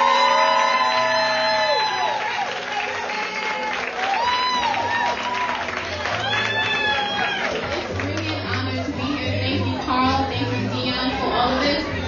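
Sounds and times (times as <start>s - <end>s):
people whooping and cheering: 0.0s - 8.1s
audience applauding: 0.0s - 9.0s.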